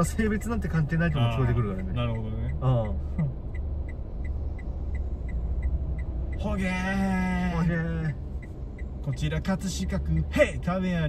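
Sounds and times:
car engine rumble: 0.0s - 11.0s
indicator relay ticking: 0.0s - 11.0s.

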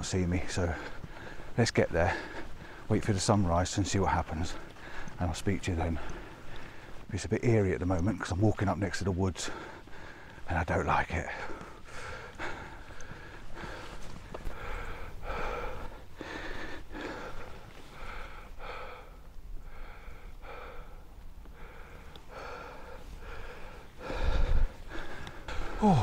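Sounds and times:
man breathing hard: 4.5s - 5.2s, 9.4s - 10.5s, 11.3s - 26.0s.

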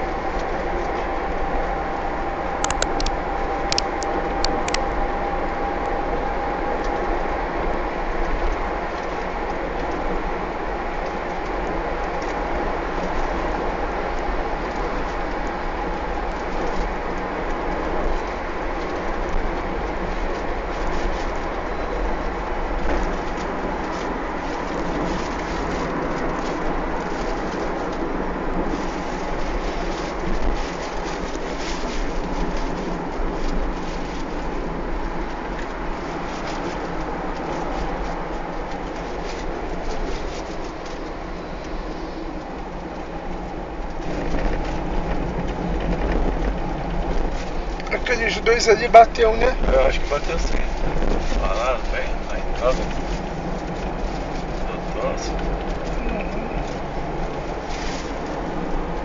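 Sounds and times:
vehicle road noise rumble: 0.0s - 59.0s.

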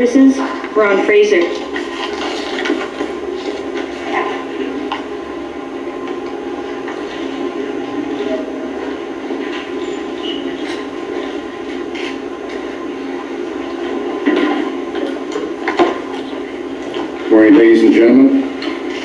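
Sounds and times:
broadcast background noise: 0.0s - 19.0s.

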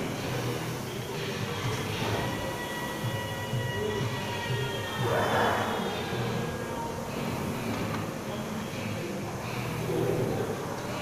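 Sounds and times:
background music: 0.0s - 11.0s
rowing machine flywheel whirring: 0.0s - 11.0s.

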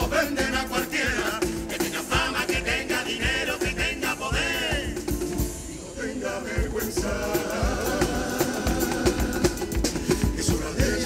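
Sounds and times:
drum beat: 0.0s - 5.7s, 6.6s - 11.0s
guitars playing: 0.0s - 6.0s, 6.6s - 11.0s.

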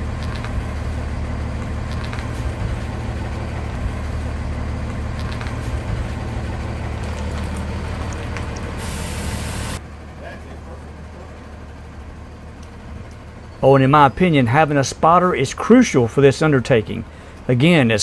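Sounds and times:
diesel engine rumbling: 0.0s - 18.0s.

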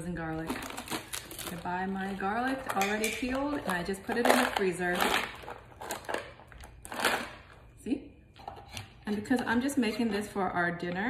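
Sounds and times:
plastic tub crinkling: 0.3s - 7.6s.

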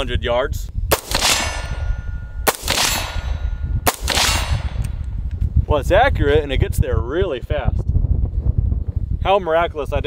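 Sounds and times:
gunshots: 0.9s - 5.0s
steel target ringing: 0.9s - 5.0s.

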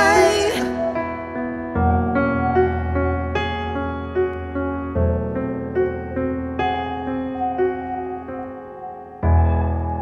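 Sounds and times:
piano playing slow chords: 0.0s - 10.0s.

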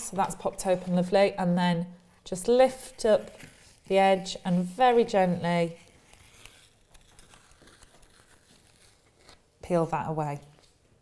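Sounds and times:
plastic strip being peeled away: 4.6s - 9.6s.

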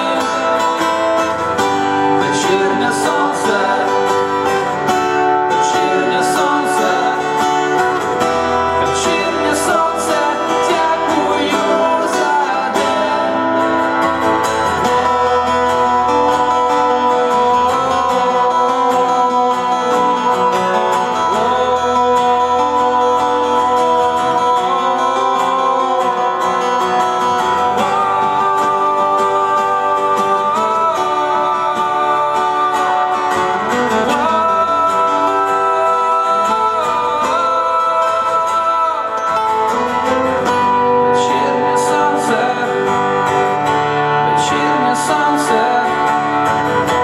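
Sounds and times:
acoustic guitars playing: 0.0s - 47.0s
man singing: 0.0s - 47.0s.

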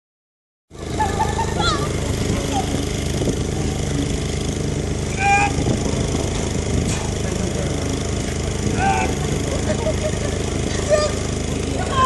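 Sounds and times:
low engine drone: 0.7s - 12.0s
short raised voice: 5.1s - 5.7s.

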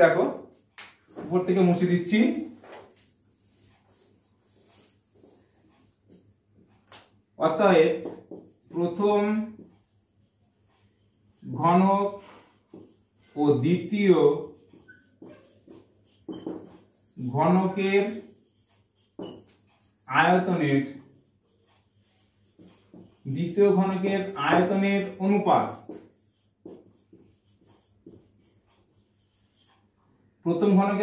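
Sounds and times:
marker squeaking on whiteboard: 1.2s - 31.0s.

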